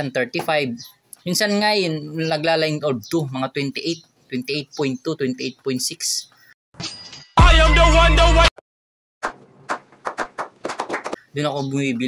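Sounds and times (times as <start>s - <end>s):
people clapping: 9.2s - 11.2s.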